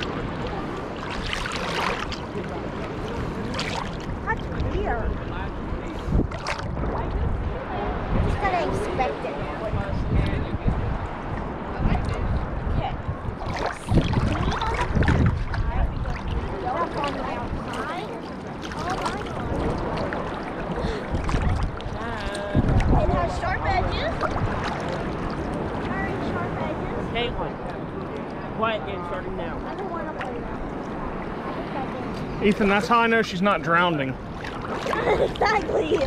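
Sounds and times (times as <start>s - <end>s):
seawater sloshing and lapping: 0.0s - 7.2s, 13.3s - 26.8s, 29.6s - 36.0s
faint voices: 34.8s - 36.0s.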